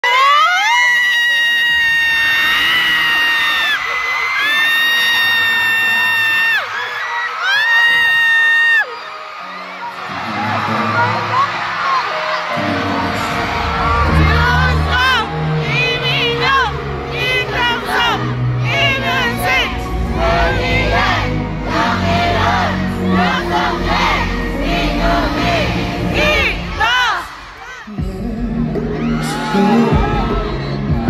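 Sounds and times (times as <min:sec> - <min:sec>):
high held screams: 0:00.0 - 0:15.2
crowd cheering: 0:00.0 - 0:31.0
band intro music: 0:09.4 - 0:27.1
low bass: 0:12.7 - 0:26.8.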